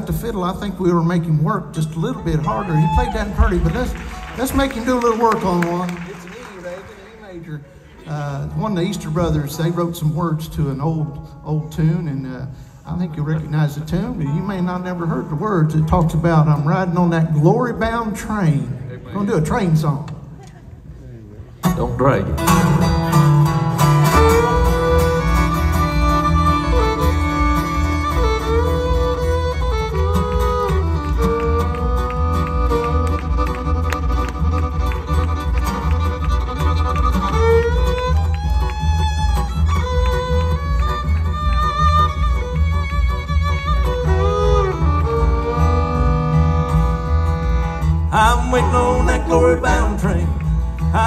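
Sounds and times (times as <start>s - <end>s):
bluegrass fiddle tune: 0.0s - 20.1s, 21.6s - 51.0s
acoustic guitar strumming: 21.6s - 51.0s
upright bass: 21.7s - 51.0s.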